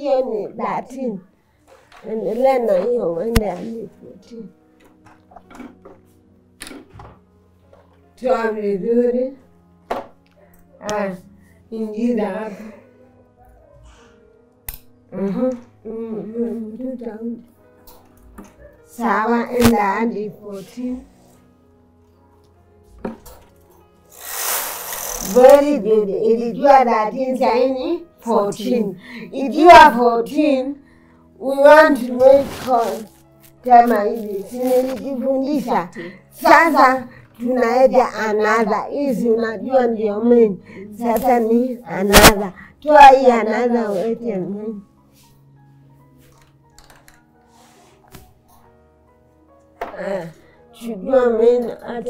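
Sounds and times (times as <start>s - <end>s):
woman speaking: 0.0s - 1.3s, 2.0s - 4.6s, 10.8s - 12.8s, 15.1s - 17.5s, 18.9s - 21.1s, 25.2s - 30.8s, 31.4s - 44.8s, 49.9s - 52.0s
soft background music: 0.0s - 52.0s.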